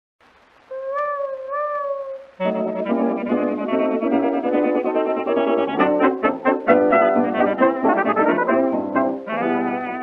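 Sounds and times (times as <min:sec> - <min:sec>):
record surface hiss: 0:00.2 - 0:10.0.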